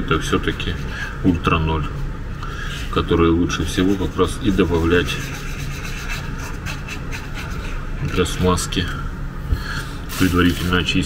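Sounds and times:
wooden stick scraping on paper: 3.8 - 8.3.

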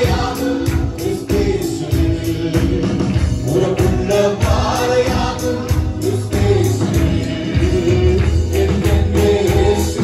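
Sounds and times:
keyboard: 0.0 - 10.0
two men singing: 0.0 - 10.0.

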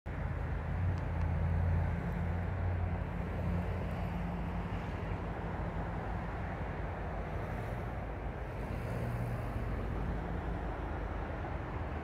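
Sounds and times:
distant locomotive engine hum: 0.1 - 12.0.

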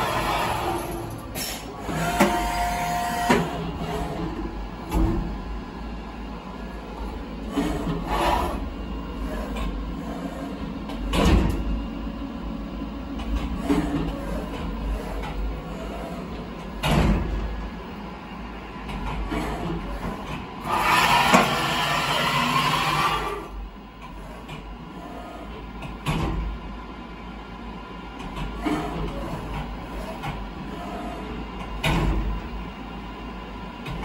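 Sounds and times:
machine axis motors whirring: 0.0 - 26.6, 28.2 - 34.0.

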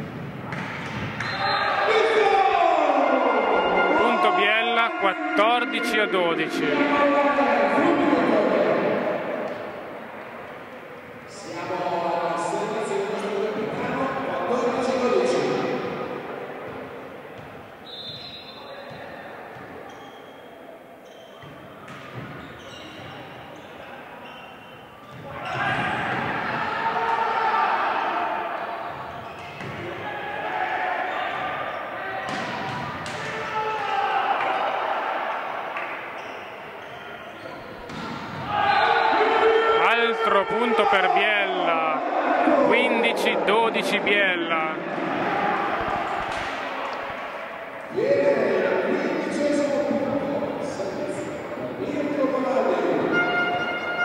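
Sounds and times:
volleyball strikes echoing: 0.0 - 2.2, 32.2 - 34.6, 37.3 - 39.4
people shouting and cheering: 1.2 - 9.5, 25.2 - 29.0, 29.8 - 49.9.

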